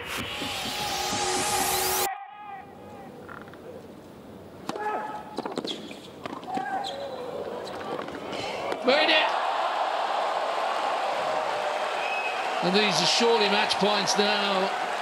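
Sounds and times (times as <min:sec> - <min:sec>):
electronic sting with rising sweep: 0:00.0 - 0:02.1
quiet arena crowd: 0:02.1 - 0:15.0
sneaker squeaks: 0:04.8 - 0:08.1.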